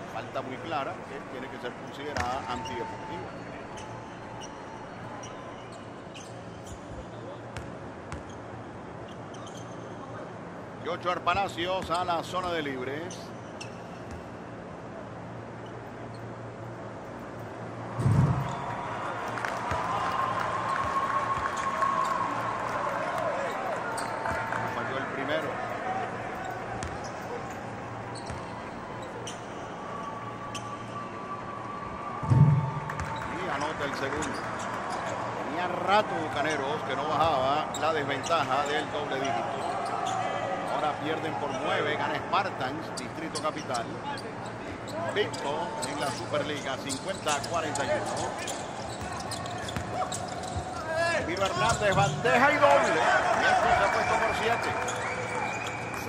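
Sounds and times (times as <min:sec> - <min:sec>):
basketball thumping: 0:18.0 - 0:18.6.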